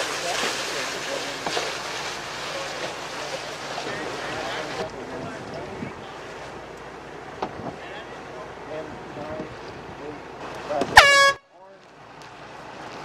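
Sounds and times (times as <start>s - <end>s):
faint voices: 0.0s - 11.9s
wind: 0.0s - 13.0s
air horn blast: 10.9s - 11.6s.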